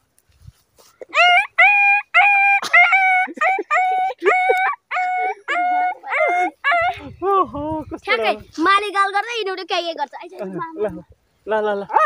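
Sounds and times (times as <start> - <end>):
boy imitating dog calls: 1.1 - 7.3.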